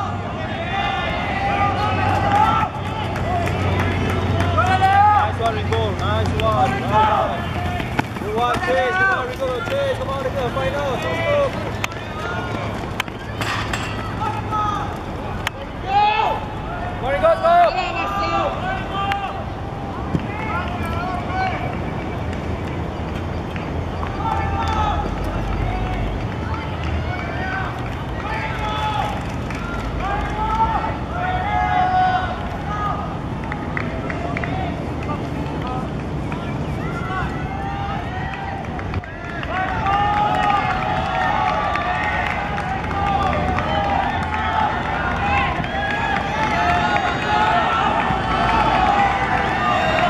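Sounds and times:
spectators shouting and cheering: 0.0 - 22.8, 23.6 - 50.0
open-air background noise: 0.0 - 50.0.

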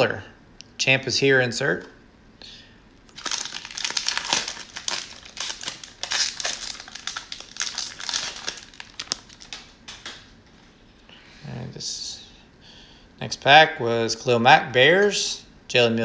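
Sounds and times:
cellophane wrapper crinkling: 3.1 - 10.3.

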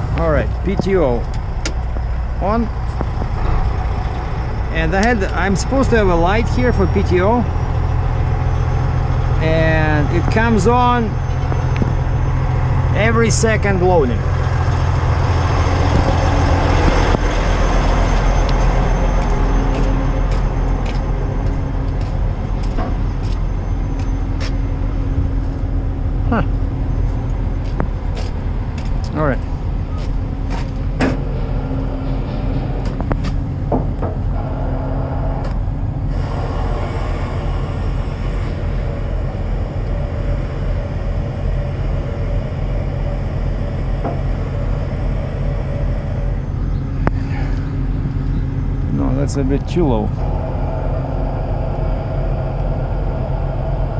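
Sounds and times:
diesel truck engine idling: 0.0 - 53.9.

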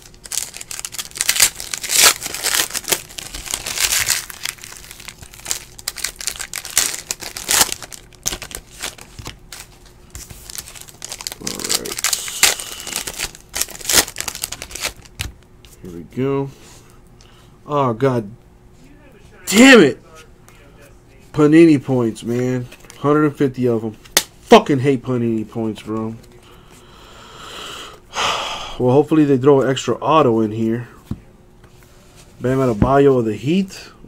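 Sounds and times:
plastic wrapper crinkling and tearing: 0.0 - 15.4
cards shuffled by hand: 0.2 - 15.3.

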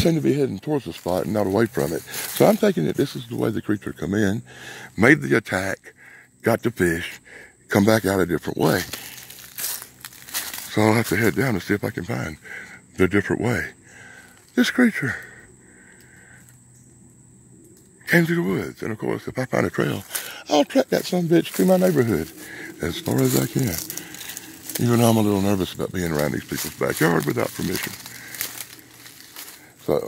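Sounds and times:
footsteps in dry leaves: 0.9 - 2.6, 8.7 - 11.4, 19.9 - 30.0.

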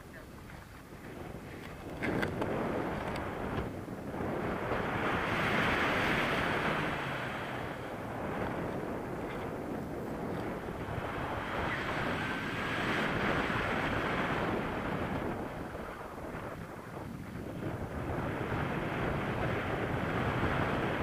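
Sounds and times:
wind roaring on microphone: 0.0 - 21.0.

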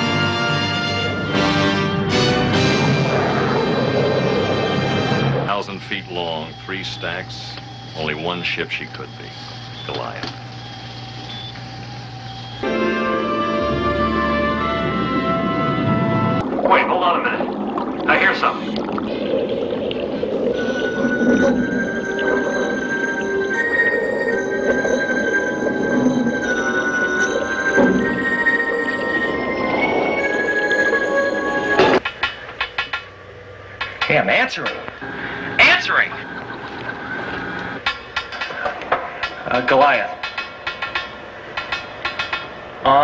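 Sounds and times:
electronic hum: 0.0 - 39.8
eerie film score high tones: 0.0 - 43.0
underwater breathing bubbles: 15.1 - 26.4.

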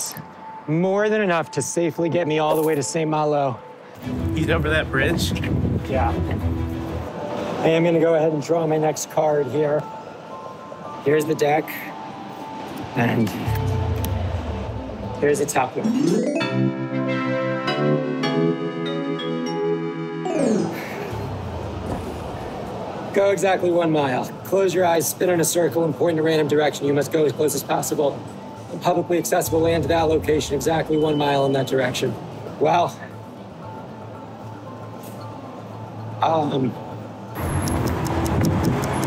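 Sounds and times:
vehicles driving past: 3.9 - 15.9, 20.8 - 39.0.

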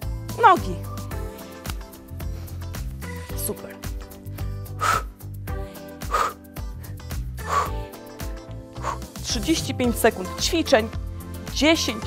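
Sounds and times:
workout music with steady beat: 0.0 - 12.0
woman breathing out hard: 4.2 - 5.2, 6.0 - 7.9.

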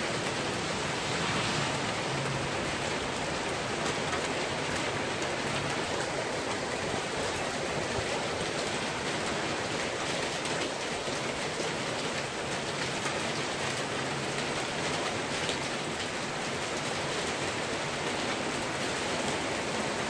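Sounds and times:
heavy rain pouring: 0.0 - 20.0.

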